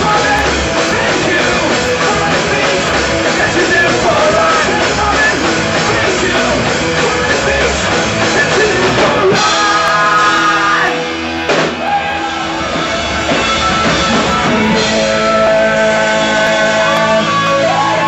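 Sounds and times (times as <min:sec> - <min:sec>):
person singing: 0:00.0 - 0:11.2, 0:13.8 - 0:18.0
punk rock band playing live: 0:00.0 - 0:18.0.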